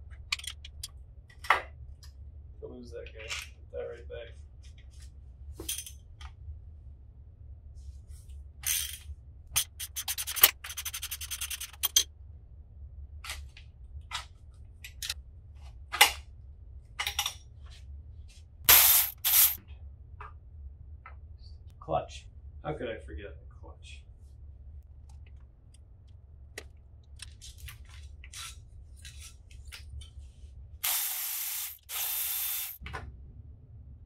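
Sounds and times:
ratchet wrench clicking: 18.7 - 19.6, 30.8 - 32.8
low steady hum: 19.6 - 31.0.

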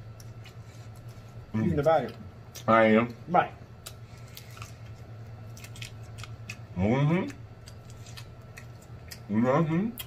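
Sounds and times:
steady low hum: 0.0 - 10.0
chewing with wet mouth clicks: 5.5 - 9.3.

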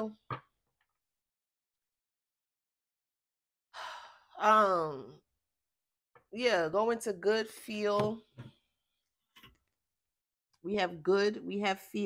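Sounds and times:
woman's voice: 4.4 - 5.2, 6.4 - 8.2, 10.7 - 12.0.

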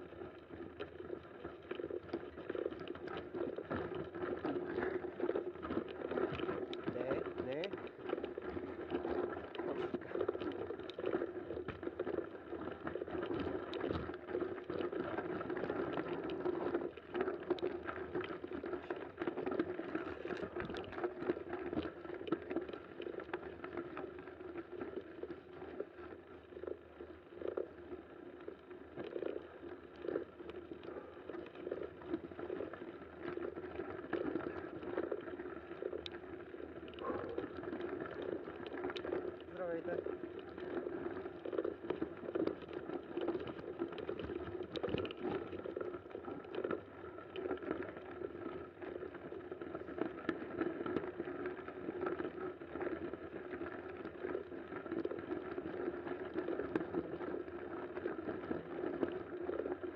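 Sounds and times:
bike tyres on snow: 0.0 - 59.9.

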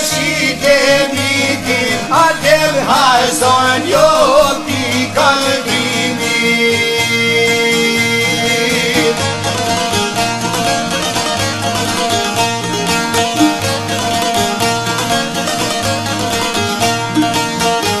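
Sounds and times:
person singing ornamented line: 0.0 - 9.4
plucked string instrument: 0.0 - 18.0.

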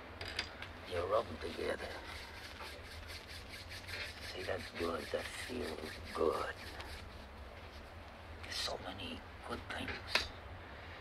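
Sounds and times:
hands rubbing together: 1.3 - 7.3.

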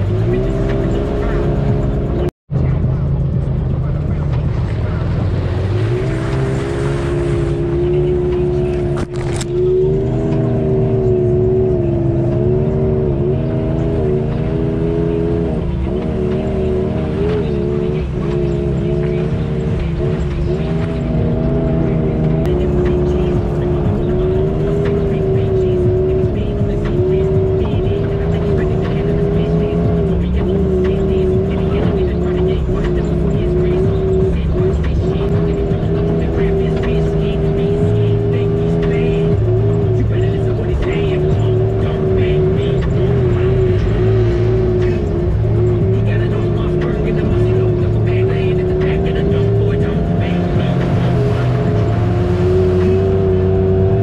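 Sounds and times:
utility vehicle engine droning: 0.0 - 54.0.

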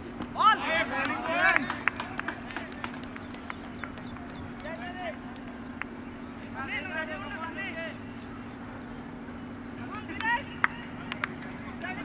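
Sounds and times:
low hum: 0.0 - 12.0
players shouting calls: 0.2 - 12.0.

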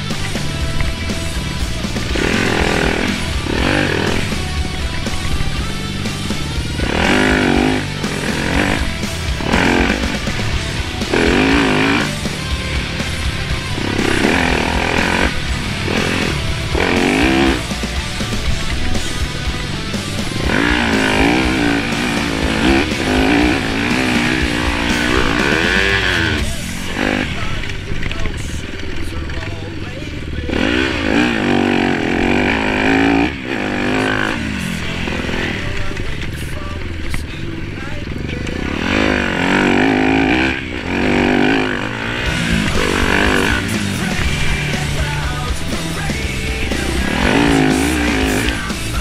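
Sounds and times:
motorcycle engine revving: 0.0 - 49.0.

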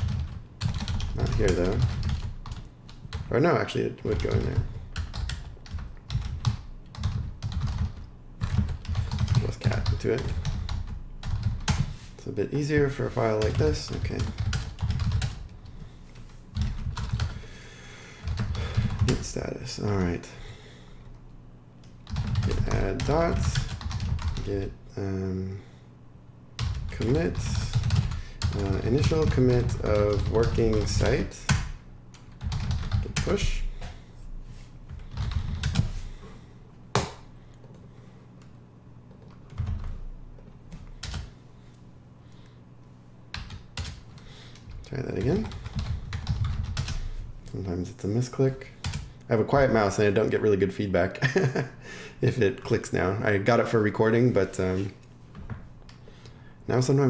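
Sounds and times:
computer keyboard typing: 0.0 - 3.3, 4.1 - 11.9, 12.8 - 17.4, 18.2 - 19.4, 22.0 - 24.7, 26.6 - 33.6, 34.9 - 35.9, 39.1 - 41.3, 43.3 - 44.0, 44.6 - 47.1, 48.8 - 49.1.

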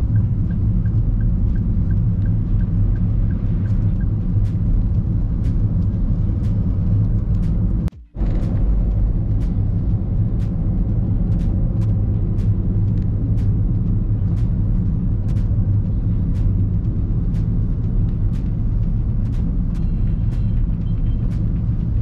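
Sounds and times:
road and engine rumble in car: 0.0 - 22.0.

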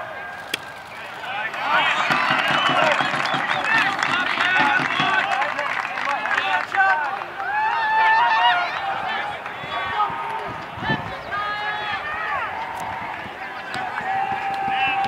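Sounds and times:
crowd chatter and shouts: 0.0 - 15.0.

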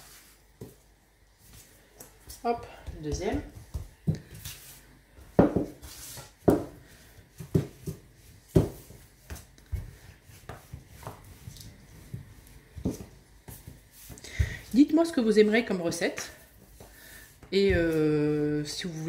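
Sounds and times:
rolling pin rubbing dough: 2.2 - 14.2
rolling pin knocking tabletop: 5.3 - 11.2.

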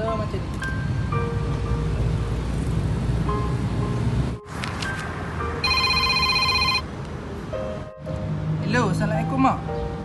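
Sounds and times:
background music: 0.0 - 10.0
phone ringing: 5.6 - 6.8.

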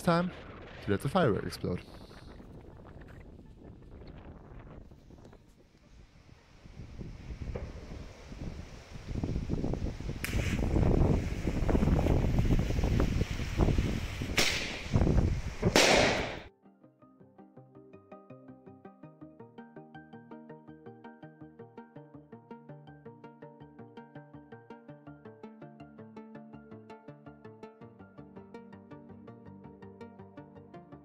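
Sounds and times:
firework crackling: 6.0 - 16.5
firework sharp cracks: 10.1 - 16.5.

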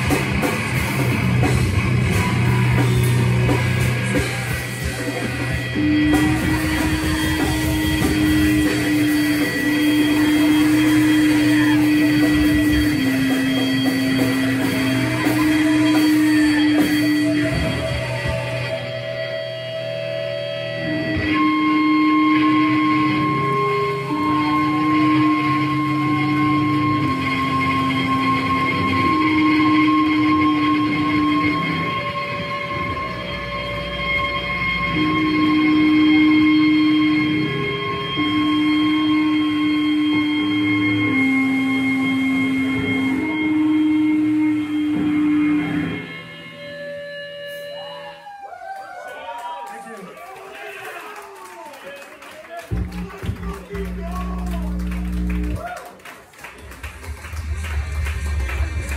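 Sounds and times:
long low guitar notes: 0.0 - 47.8, 52.7 - 55.7
electric guitar feedback: 0.0 - 48.8, 52.6 - 55.8.

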